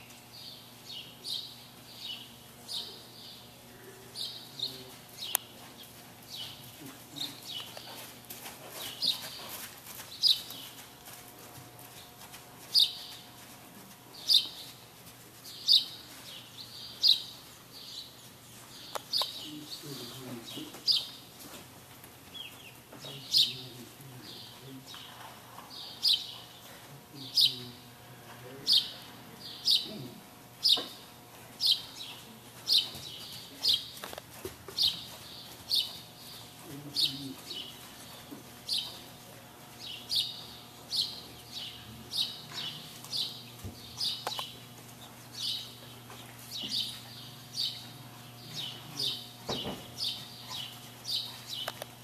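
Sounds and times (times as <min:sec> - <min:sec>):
small birds chirping: 0:00.0 - 0:11.2, 0:11.8 - 0:13.5, 0:14.1 - 0:21.5, 0:22.2 - 0:52.0
faint steady hum: 0:00.0 - 0:52.0.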